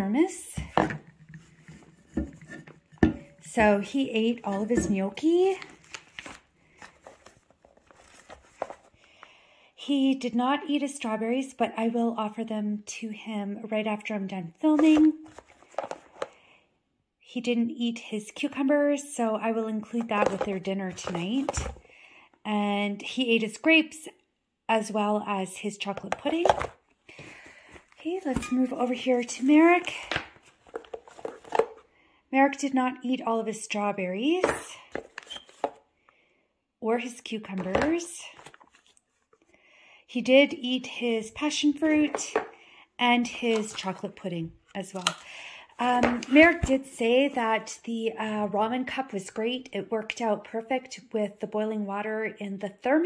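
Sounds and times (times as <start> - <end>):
plastic containers clicking and knocking: 14.8 - 16.4, 19.9 - 21.8, 29.9 - 31.8, 41.9 - 42.6.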